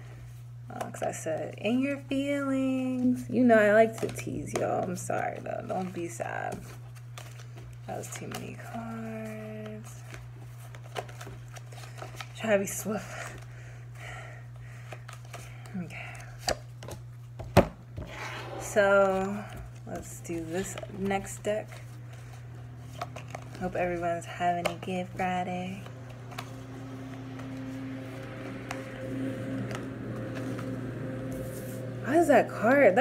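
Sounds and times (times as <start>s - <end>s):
low room hum: 0.0s - 33.0s
cards being shuffled: 3.8s - 13.4s, 18.5s - 28.4s
steady low hum: 18.0s - 33.0s.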